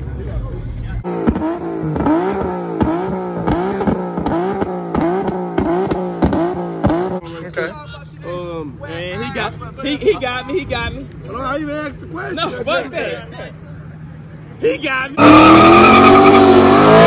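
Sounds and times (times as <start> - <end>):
car engine revving: 0.6 - 7.2, 15.2 - 17.0.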